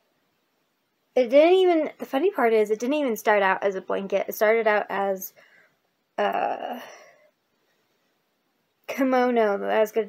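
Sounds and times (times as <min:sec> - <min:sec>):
woman speaking: 0:01.2 - 0:05.4, 0:06.2 - 0:07.1, 0:08.9 - 0:10.0.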